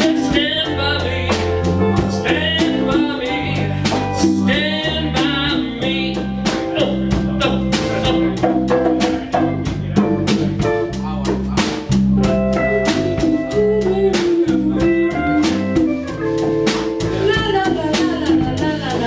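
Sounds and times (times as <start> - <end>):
electric guitar: 0.0 - 10.9, 11.8 - 19.0
bass guitar: 0.0 - 19.0
congas: 0.0 - 19.0
drum kit beat: 0.0 - 19.0.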